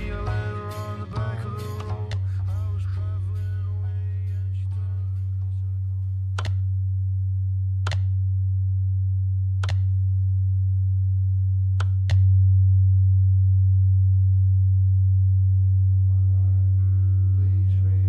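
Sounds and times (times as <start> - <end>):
low pure test tone: 0.0 - 18.0
dial clicks: 6.3 - 6.7, 7.8 - 8.2, 9.6 - 10.0, 11.8 - 12.3.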